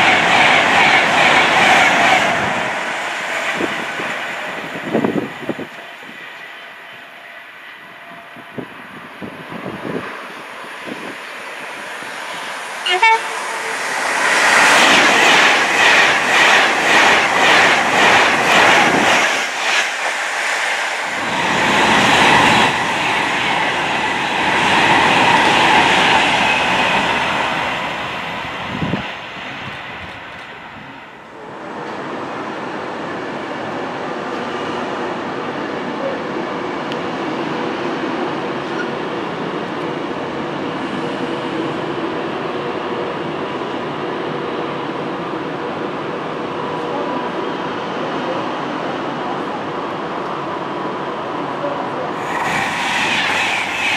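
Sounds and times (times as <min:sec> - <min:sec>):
train rushing past: 0:00.0 - 0:53.9
train wheels clattering over rails: 0:13.8 - 0:29.0.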